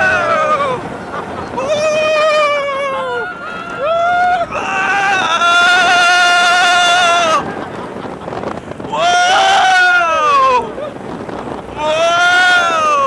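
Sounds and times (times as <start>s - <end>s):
riders yelling: 0.0s - 8.1s, 8.8s - 13.0s
wind rushing over microphone: 0.0s - 13.0s.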